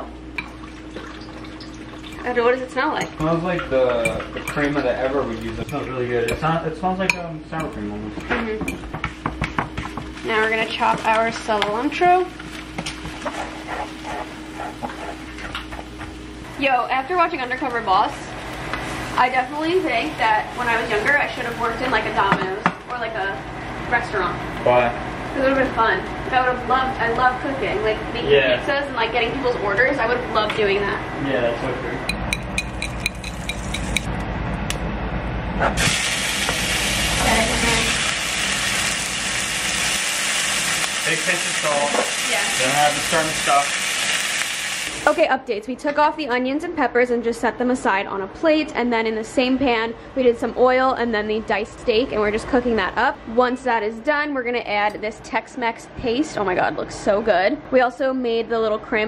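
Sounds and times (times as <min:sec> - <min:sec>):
steady low hum: 0:00.0 - 0:41.0
steak sizzling in a frying pan: 0:35.8 - 0:45.2.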